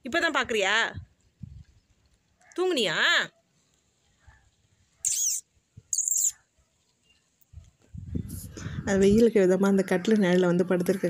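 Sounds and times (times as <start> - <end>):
bird chirping: 5.0 - 7.6.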